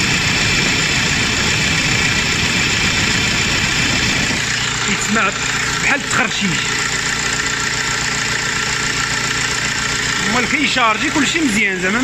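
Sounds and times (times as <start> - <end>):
alternator scratching noise: 0.0 - 6.6
car engine idling: 0.0 - 12.0.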